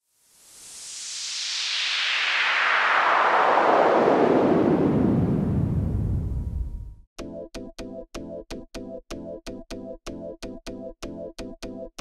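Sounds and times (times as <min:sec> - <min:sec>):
falling noise sweep: 0:00.4 - 0:07.0
deep rumbling boom: 0:04.5 - 0:07.0.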